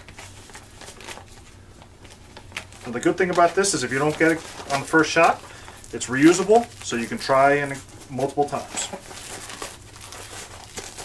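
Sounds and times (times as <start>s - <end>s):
jacket material crinkling: 0.0s - 11.0s.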